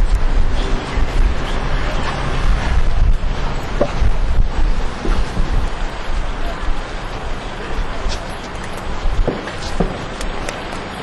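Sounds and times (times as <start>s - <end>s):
street noise: 0.0s - 11.0s
wind buffeting microphone: 0.0s - 11.0s.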